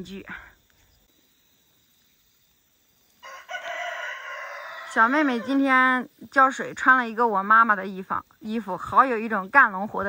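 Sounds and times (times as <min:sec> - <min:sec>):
rooster crowing: 0:03.2 - 0:05.6.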